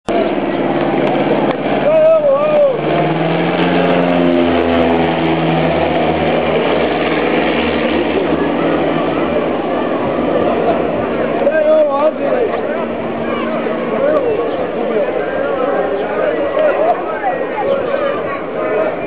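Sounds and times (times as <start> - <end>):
people's voices: 0.1 - 19.0
propeller plane droning overhead: 0.1 - 19.0.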